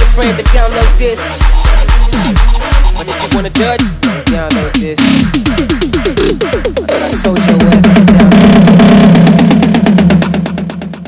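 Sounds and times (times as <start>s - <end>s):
buzzing synth bass: 0.0s - 11.0s
rapid percussion hits: 0.0s - 11.0s.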